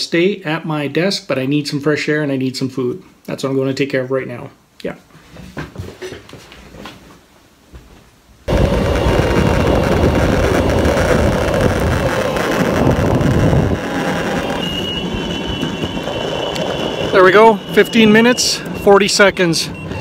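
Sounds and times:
skateboard wheels rumbling on asphalt: 8.5 - 19.3
thin high whine: 8.5 - 20.0.

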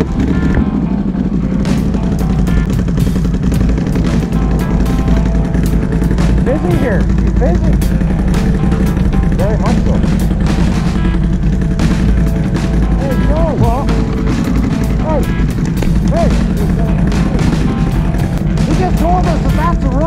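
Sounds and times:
background music: 0.0 - 20.0
quad bike engines running: 0.0 - 20.0.

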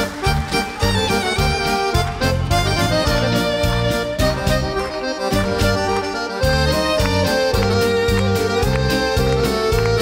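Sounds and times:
accordion melody: 0.0 - 10.0
live folk-pop band: 0.0 - 10.0.

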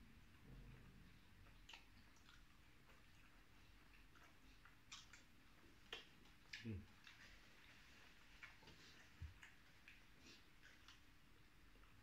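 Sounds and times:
chewing and lip smacks: 0.3 - 12.0.

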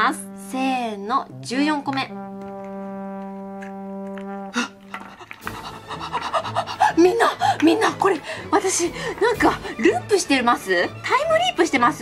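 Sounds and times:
woman laughing in breathy bursts: 5.0 - 7.0.

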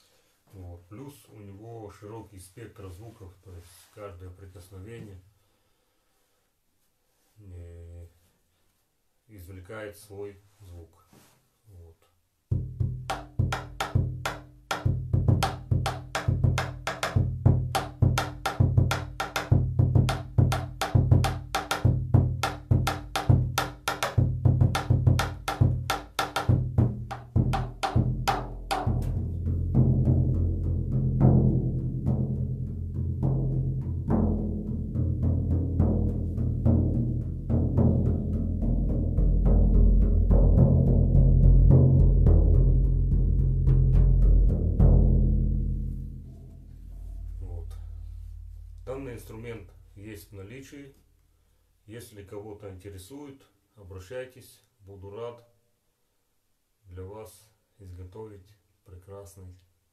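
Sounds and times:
drum roll rumbling: 12.5 - 46.5
frame drum beating: 12.5 - 49.5.

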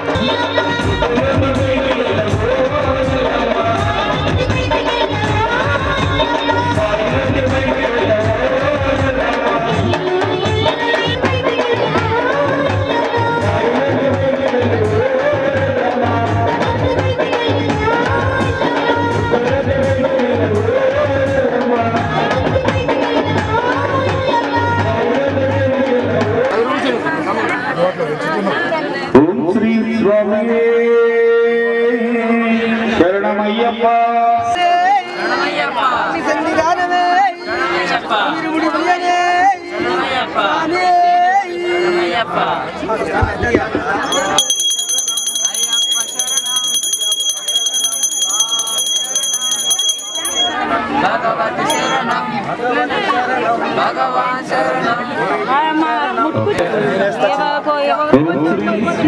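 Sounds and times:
music with drum: 0.0 - 26.6, 43.2 - 50.6
people chattering: 21.7 - 59.0
overlapping voices talking: 41.5 - 58.9
hand bell ringing: 44.0 - 50.8, 51.7 - 52.2.

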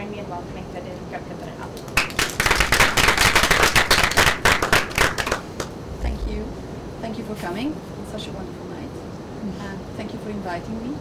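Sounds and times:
audience applauding: 2.0 - 5.7.

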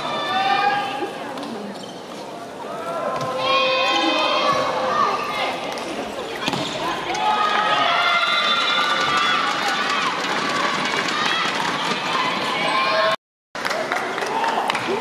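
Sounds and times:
spectators chanting and shouting: 2.6 - 15.0.

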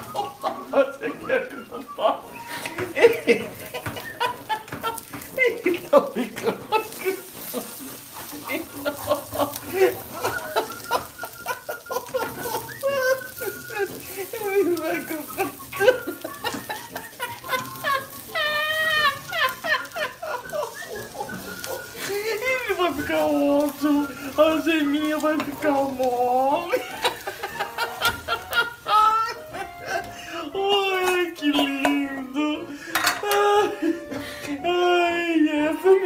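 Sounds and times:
plastic spatula scraping frying pan: 2.3 - 30.2.

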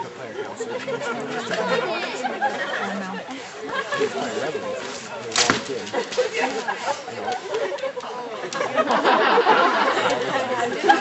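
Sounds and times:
indistinct group chatter: 0.0 - 11.0.

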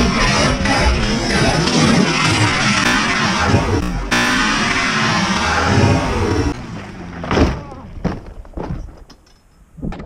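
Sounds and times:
vehicle crash impact: 2.3 - 9.1
knocks and thuds: 7.2 - 9.1.

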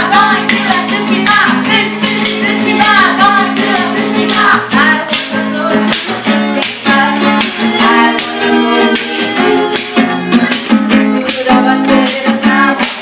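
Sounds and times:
people singing: 0.0 - 13.0
strummed guitar: 0.0 - 13.0.

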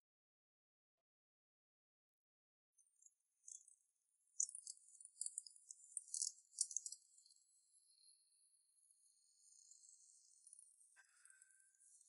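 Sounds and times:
crickets chirping and trilling: 4.4 - 12.0.

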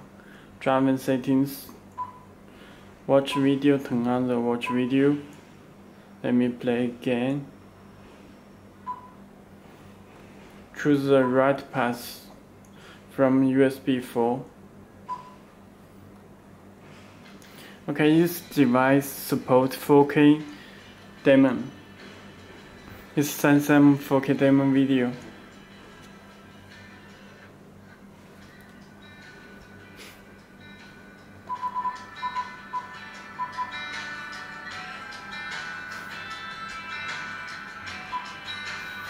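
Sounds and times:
faint steady hum: 0.0 - 39.0
music through car speaker: 31.5 - 39.0.

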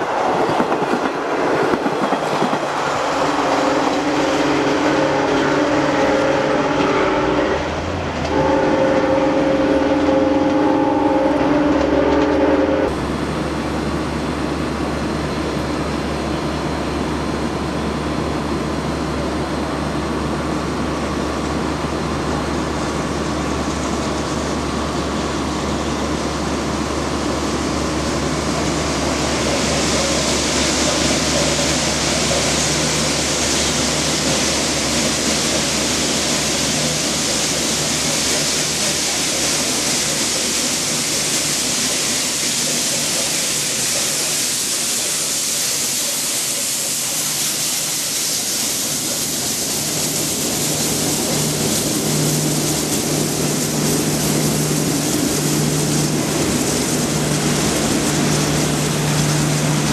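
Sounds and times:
train rushing hiss: 0.0 - 14.4, 17.0 - 59.9.

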